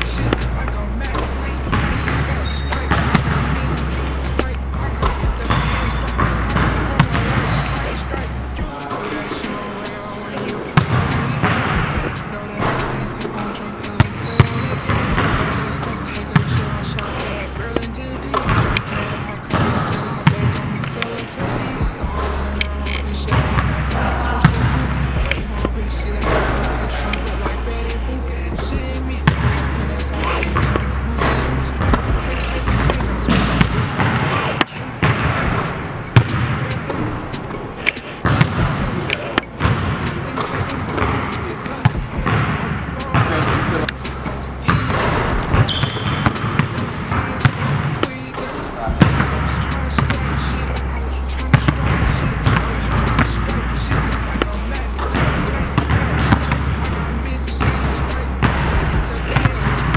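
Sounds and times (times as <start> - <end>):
background music with deep bass: 0.0 - 59.9
basketballs bouncing on hardwood floor: 0.0 - 59.9.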